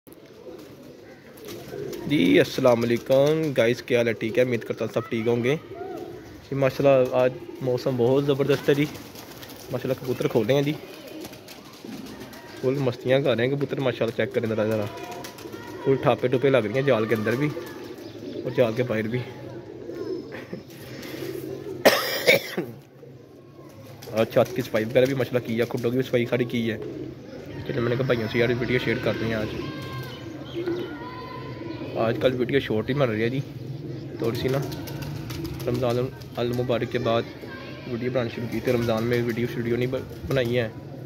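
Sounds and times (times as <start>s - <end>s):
pigeons cooing: 0.1s - 41.0s
man coughing: 21.8s - 22.8s.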